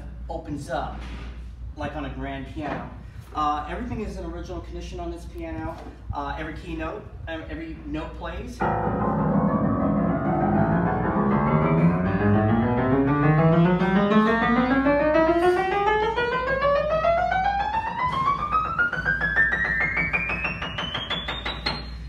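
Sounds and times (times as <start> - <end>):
upright piano notes climbing: 8.6 - 22.0.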